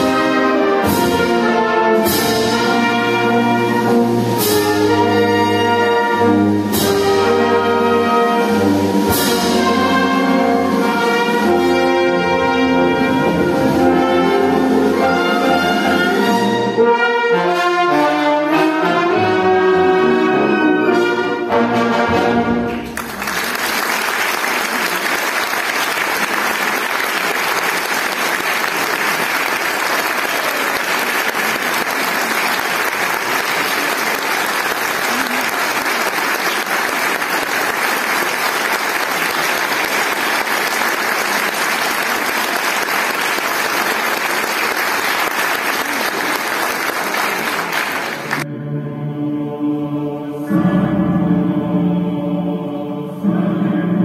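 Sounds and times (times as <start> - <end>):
audience applauding: 22.9 - 48.4
slow chant-like vocal music: 48.4 - 54.0.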